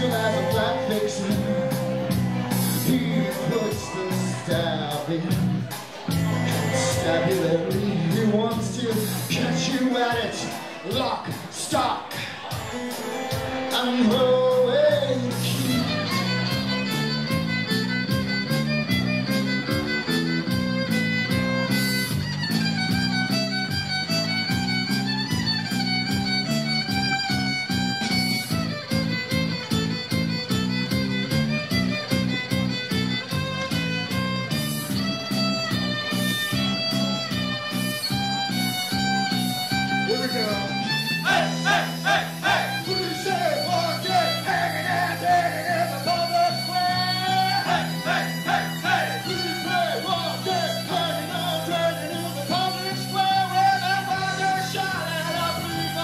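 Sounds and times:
live band playing: 0:00.0 - 0:56.0
amplified violin: 0:15.4 - 0:51.8.

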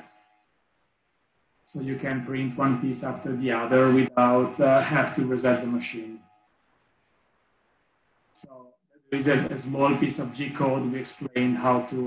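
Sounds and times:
man's voice: 0:01.7 - 0:06.2, 0:08.4 - 0:12.0.

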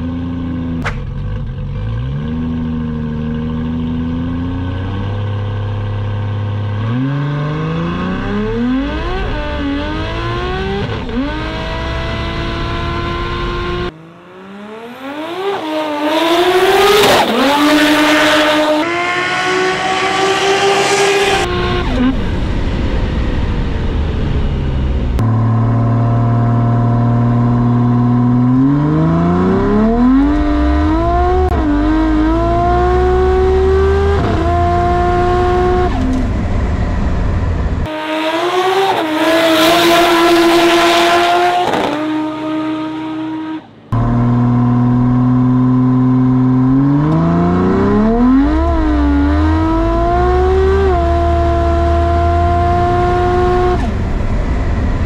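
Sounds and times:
car engine accelerating: 0:00.0 - 0:55.0.

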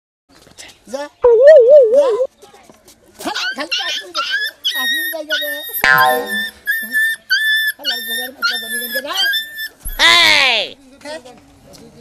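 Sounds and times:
puppy whining and yelping: 0:03.4 - 0:10.1.

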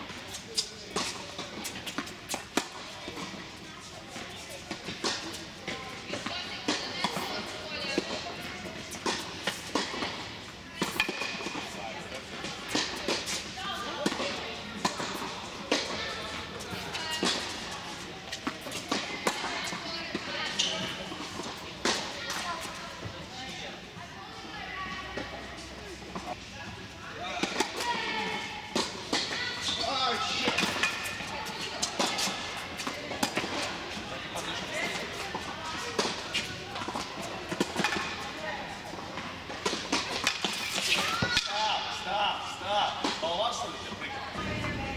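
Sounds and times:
tennis balls struck by rackets: 0:00.0 - 0:23.1, 0:27.3 - 0:41.9
balls bouncing on hard court: 0:00.1 - 0:23.2.

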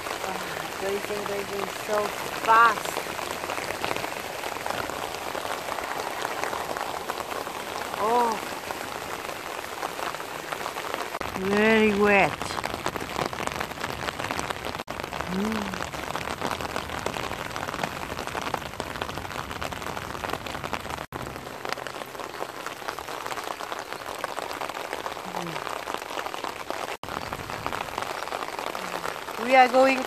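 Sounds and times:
heavy rain on grass and concrete: 0:00.0 - 0:30.0.

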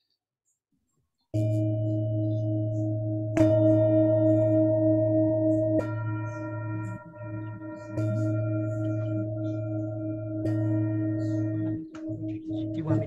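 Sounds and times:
singing bowl struck and ringing: 0:01.4 - 0:13.0.

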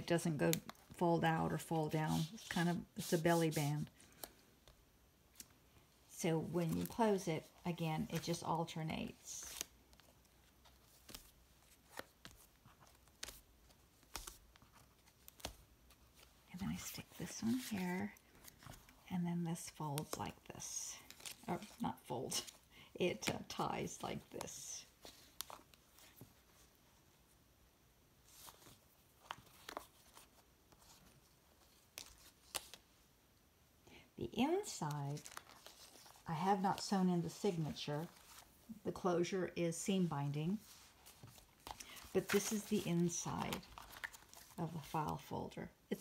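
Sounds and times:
soft paper taps and rustles: 0:09.4 - 0:19.0, 0:22.4 - 0:26.6, 0:28.3 - 0:32.8, 0:35.1 - 0:36.2, 0:40.6 - 0:44.9.

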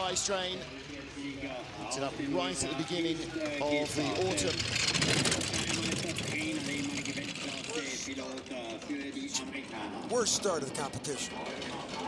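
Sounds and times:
voices: 0:00.0 - 0:12.0
bobsleigh runners rattling on ice: 0:02.0 - 0:12.0.

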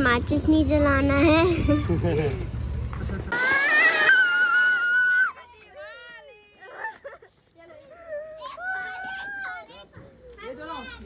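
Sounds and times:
children's excited chatter: 0:07.6 - 0:11.0.

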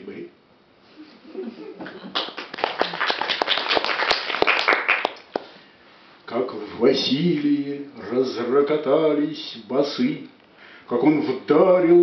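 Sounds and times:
audience clapping: 0:01.8 - 0:05.5.

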